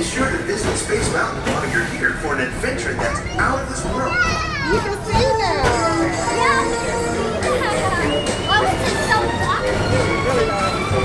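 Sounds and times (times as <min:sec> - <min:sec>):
children calling out: 0:03.0 - 0:10.2.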